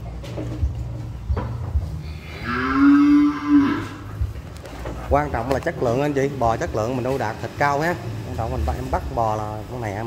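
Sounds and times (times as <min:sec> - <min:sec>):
cow mooing: 0:02.2 - 0:04.2.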